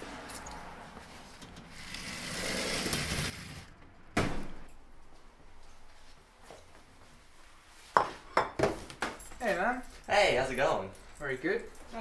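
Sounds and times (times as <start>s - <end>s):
sliding glass door on track: 1.6s - 3.7s.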